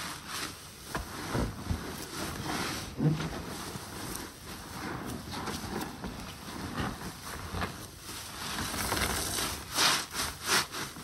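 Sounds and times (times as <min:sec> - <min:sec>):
sponges squelching in soapy water: 0:00.0 - 0:11.0.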